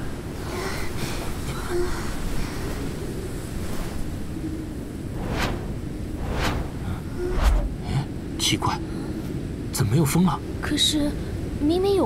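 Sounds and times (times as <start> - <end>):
snowstorm wind rushing: 0.0 - 9.8
wind whooshes: 2.2 - 9.7.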